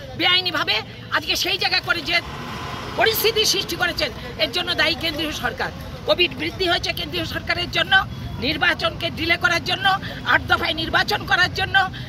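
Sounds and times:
outdoor background noise: 0:00.0 - 0:12.0
woman speaking: 0:00.2 - 0:12.0.

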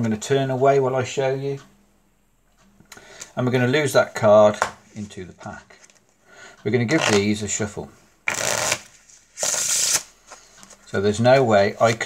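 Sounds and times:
playing cards riffle-shuffled: 0:08.3 - 0:10.8.

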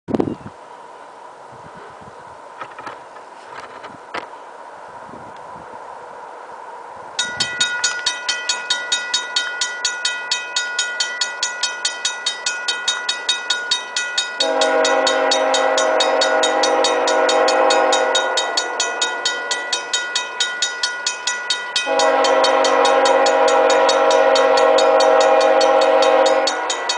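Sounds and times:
railroad crossing warning bell: 0:07.1 - 0:26.9
locomotive air horn blast: 0:14.4 - 0:18.8, 0:21.8 - 0:26.9.

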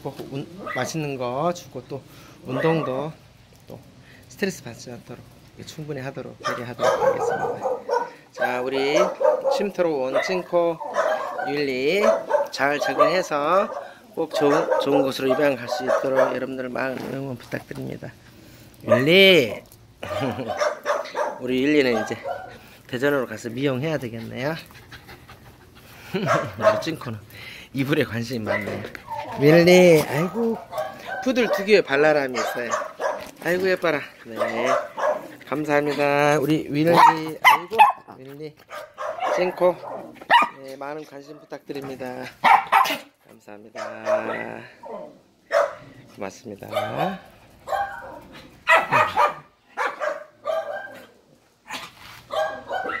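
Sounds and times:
small dog barking: 0:02.5 - 0:03.0, 0:06.4 - 0:16.4, 0:18.8 - 0:19.1, 0:20.0 - 0:22.6, 0:26.2 - 0:26.9, 0:28.5 - 0:29.5, 0:30.1 - 0:31.7, 0:32.3 - 0:33.4, 0:34.4 - 0:35.3, 0:36.9 - 0:38.1, 0:38.7 - 0:40.6, 0:42.4 - 0:43.1, 0:43.8 - 0:45.9, 0:46.7 - 0:53.0
woman laughing softly: 0:20.0 - 0:20.6.

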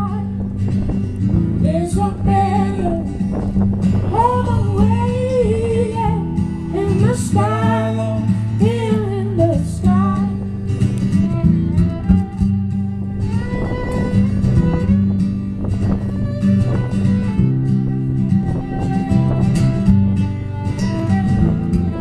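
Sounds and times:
woman singing: 0:00.0 - 0:00.4, 0:01.6 - 0:10.6
strummed acoustic guitar: 0:00.0 - 0:22.0
violin playing: 0:00.0 - 0:22.0.

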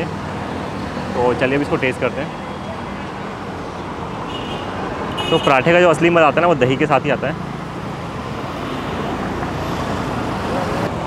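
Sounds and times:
cars passing close by: 0:00.0 - 0:11.0.

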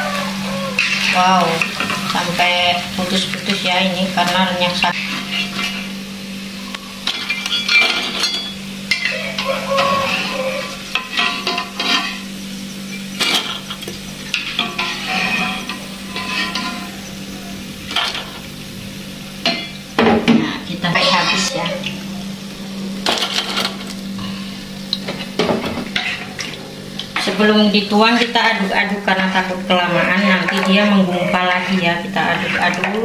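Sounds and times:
oil sizzling: 0:00.0 - 0:33.0
steady low hum: 0:00.0 - 0:33.0
metal spatula scraping a wok: 0:00.6 - 0:02.5, 0:04.8 - 0:06.0, 0:07.0 - 0:12.3, 0:14.3 - 0:17.1, 0:20.9 - 0:21.6, 0:25.9 - 0:26.5, 0:29.9 - 0:33.0.

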